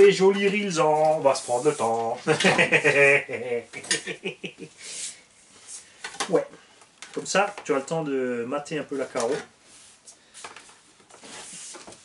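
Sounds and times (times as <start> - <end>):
soft rustle: 0.5 - 2.2, 8.9 - 12.0.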